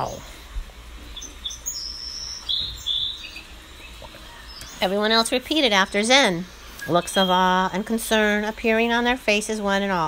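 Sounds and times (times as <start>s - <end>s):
birds chirping: 0.0s - 9.3s
low steady hum: 0.0s - 10.0s.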